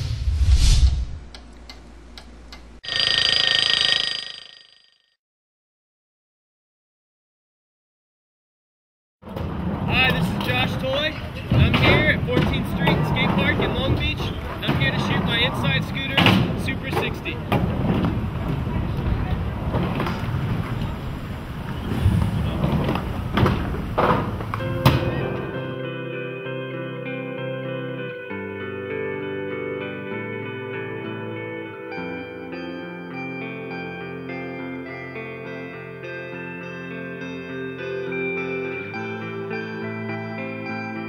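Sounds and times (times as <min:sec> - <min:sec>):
faint clock ticks: 0:01.3 - 0:02.7
loud bell ring: 0:02.8 - 0:05.0.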